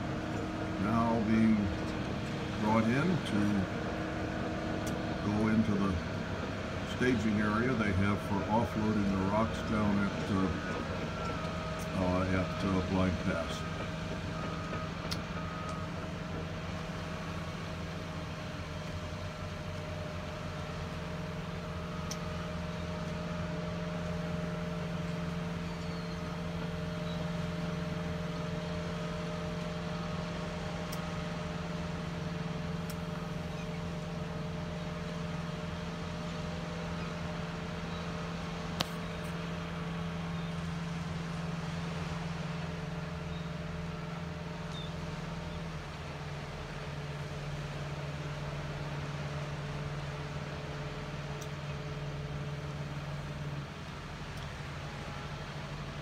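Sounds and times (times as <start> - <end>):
low machinery drone: 0.0 - 56.0.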